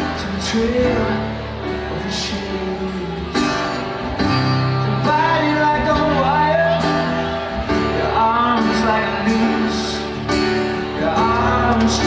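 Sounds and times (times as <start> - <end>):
acoustic guitar: 0.0 - 12.0
keyboard playing: 0.0 - 12.0.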